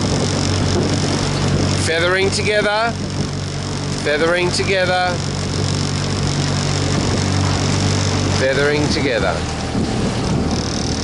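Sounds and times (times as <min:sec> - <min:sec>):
boat engine humming: 0:00.0 - 0:11.0
rush of wind and water: 0:00.0 - 0:11.0.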